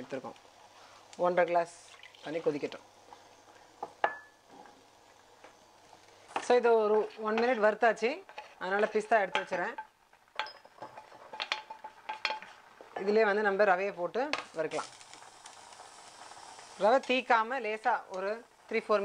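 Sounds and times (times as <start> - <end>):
sizzling in hot pan: 0.0 - 19.0
wooden spoon scraping frying pan: 6.3 - 13.1.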